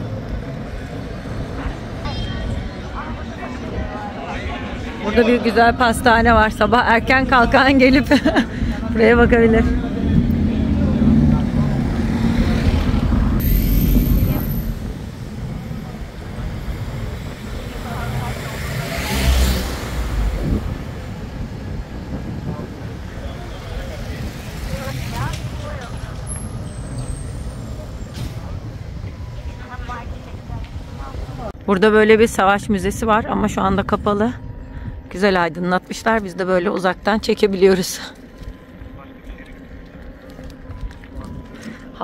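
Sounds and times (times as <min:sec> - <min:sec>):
road noise: 0:00.0 - 0:42.0
wind rumbling on microphone: 0:00.0 - 0:42.0.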